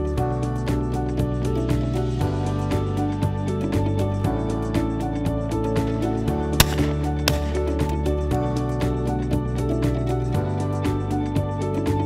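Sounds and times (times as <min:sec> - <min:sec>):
background music: 0:00.0 - 0:12.0
shotgun shots: 0:06.6 - 0:08.0.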